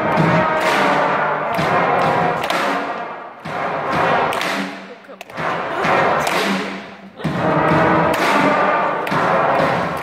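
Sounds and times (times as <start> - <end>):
children's brass band playing: 0.0 - 10.0.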